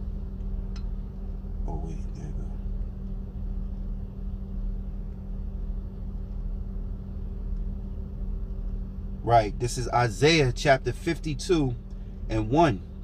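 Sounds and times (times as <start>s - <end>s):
car cabin hum and rumble: 0.0s - 13.0s.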